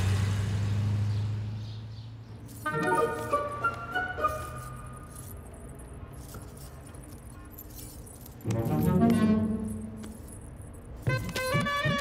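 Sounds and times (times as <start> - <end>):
bangles jingling: 2.2 - 12.0
background music: 2.6 - 5.6, 8.4 - 10.4.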